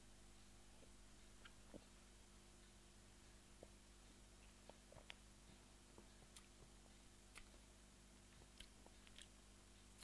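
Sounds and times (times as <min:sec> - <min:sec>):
faint mouth clicks and smacks: 0:04.4 - 0:05.3, 0:06.0 - 0:07.7, 0:08.3 - 0:10.0.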